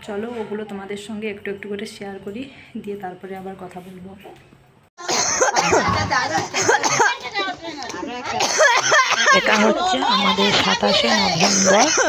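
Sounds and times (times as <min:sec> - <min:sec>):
overlapping voices: 0:05.4 - 0:12.0.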